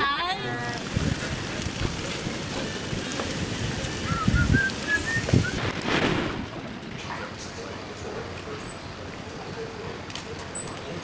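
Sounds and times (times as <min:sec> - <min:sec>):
steady street hiss: 0:00.0 - 0:11.0.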